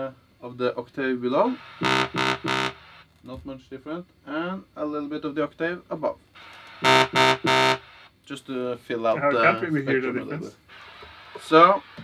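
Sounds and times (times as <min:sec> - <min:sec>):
synthesizer sawtooth notes: 0:01.8 - 0:03.0, 0:06.8 - 0:07.9.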